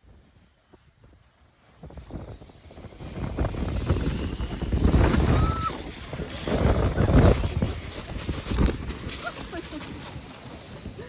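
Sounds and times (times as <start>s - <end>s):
wind noise on microphone: 0.0s - 11.0s
snow tube thump: 3.2s - 11.0s.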